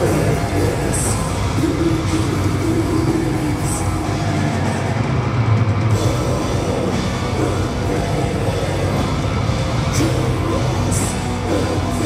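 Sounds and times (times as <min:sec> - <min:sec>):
death metal band playing live: 0:00.0 - 0:12.0.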